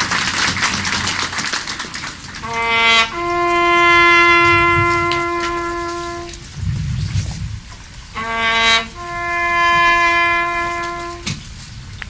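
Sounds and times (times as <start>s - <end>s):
bugle note: 2.4s - 6.5s, 8.1s - 11.4s
low rumble: 3.0s - 12.0s.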